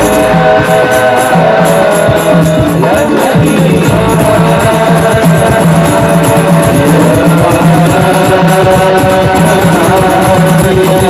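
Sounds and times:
frame drums beating fast rhythm: 0.0 - 11.0
person singing through microphones: 0.0 - 11.0.

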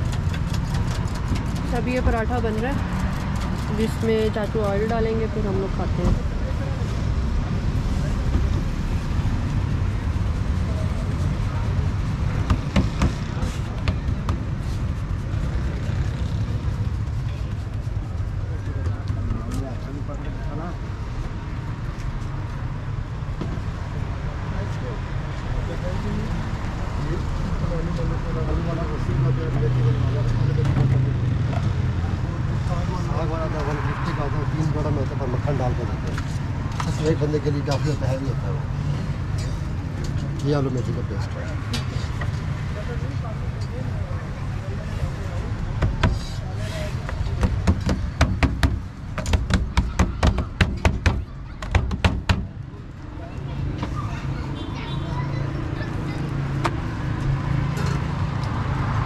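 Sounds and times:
low traffic rumble: 0.0 - 59.0
sharp knocks: 12.4 - 14.5, 47.4 - 52.6.

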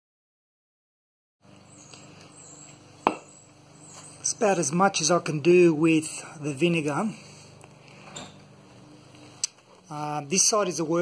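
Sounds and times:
low steady hum: 1.4 - 11.0
sharp knock with ring: 3.0 - 3.3.

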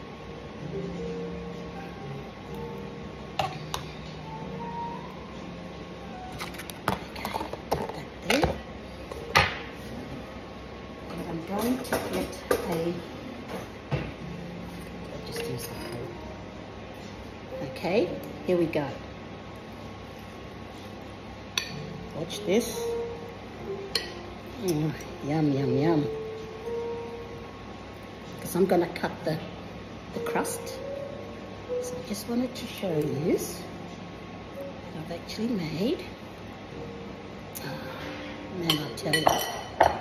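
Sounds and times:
low room hum: 0.0 - 40.0.

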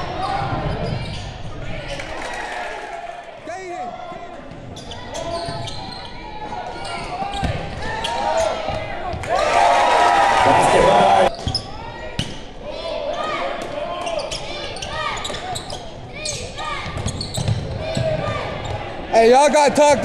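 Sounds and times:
voices echoing in gym: 0.0 - 20.0
sneakers squeaking: 0.2 - 2.2, 4.5 - 8.9, 11.3 - 12.5, 13.1 - 18.9.

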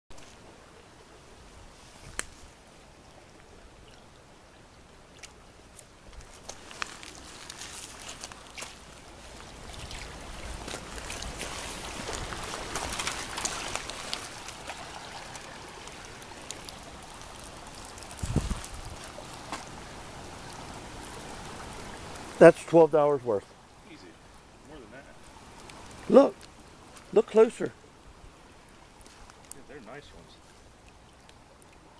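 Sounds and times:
creek water trickling: 0.1 - 31.9.

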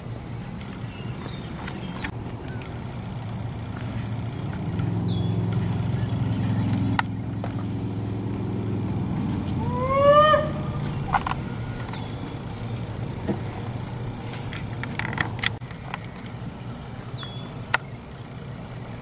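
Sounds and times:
low engine hum: 0.0 - 19.0
short loud rising call: 9.5 - 11.7.

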